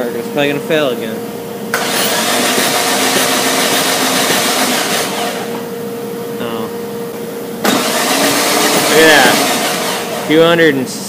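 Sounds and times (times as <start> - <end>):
engine cranking on starter motor: 1.8 - 5.5, 7.6 - 10.3.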